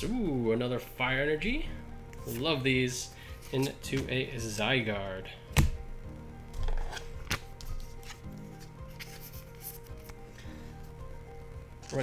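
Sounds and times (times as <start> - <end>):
quiet background music: 0.0 - 12.0
cards tapping and scraping: 3.4 - 4.1, 6.6 - 10.2.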